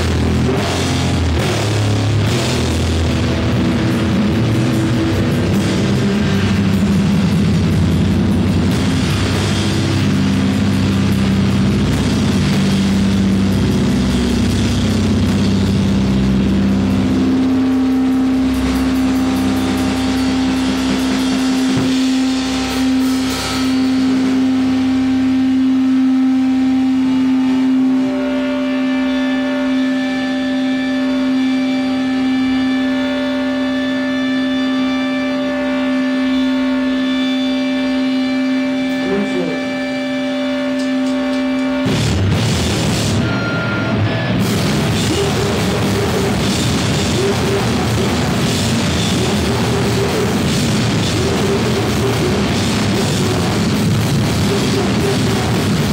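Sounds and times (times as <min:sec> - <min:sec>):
distorted guitar note drone: 0:00.0 - 0:55.9
live rock band playing: 0:00.0 - 0:55.9.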